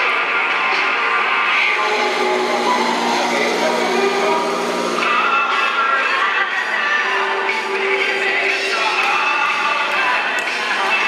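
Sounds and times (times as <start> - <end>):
distant live rock music: 1.4 - 9.7
person singing: 1.5 - 11.0.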